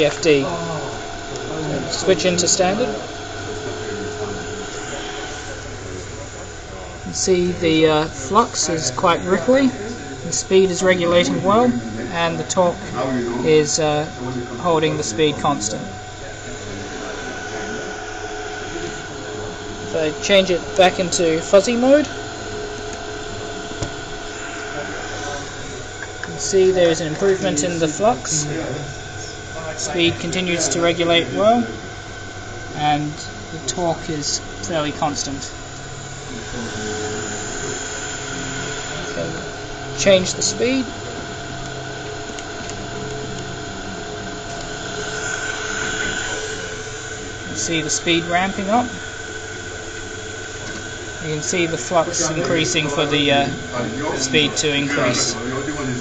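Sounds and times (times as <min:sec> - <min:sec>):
electric motor whirring: 0:00.0 - 0:56.0
steady high-pitched tone: 0:00.0 - 0:56.0.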